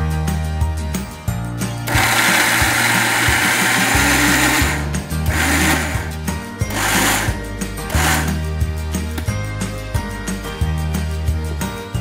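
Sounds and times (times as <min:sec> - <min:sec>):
mixer grinder grinding: 0:01.9 - 0:08.4.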